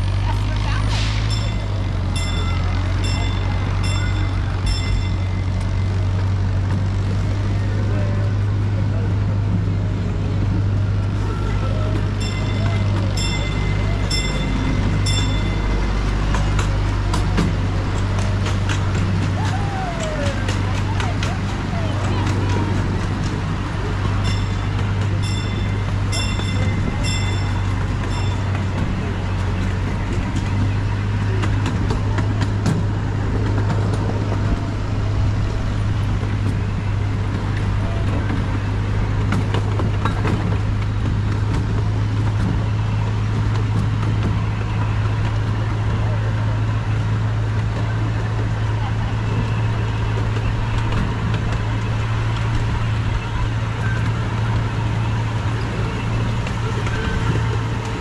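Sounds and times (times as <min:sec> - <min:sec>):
miniature train engine drone: 0:00.0 - 0:58.0
wheels rumbling on rails: 0:00.0 - 0:58.0.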